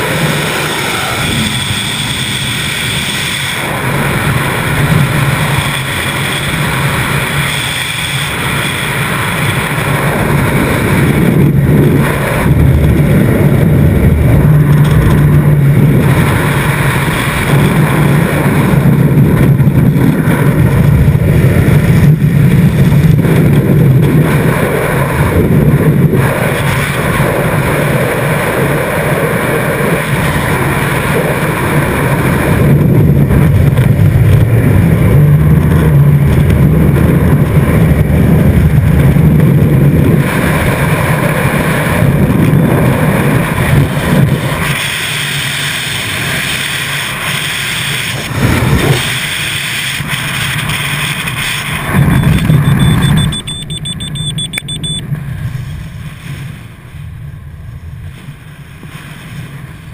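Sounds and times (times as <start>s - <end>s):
freefall wind buffeting microphone: 0.0s - 59.9s.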